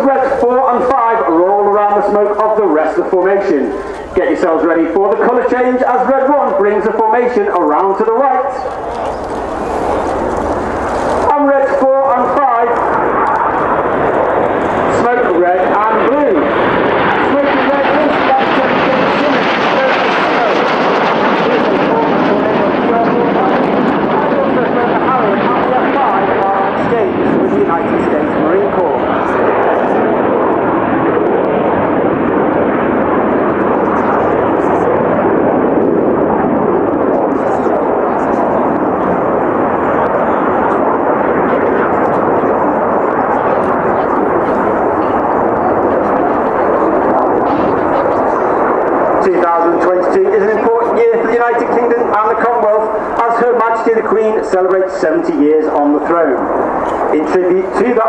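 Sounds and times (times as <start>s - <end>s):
person speaking: 0.0s - 9.0s, 49.2s - 58.0s
jets flying past: 0.0s - 58.0s.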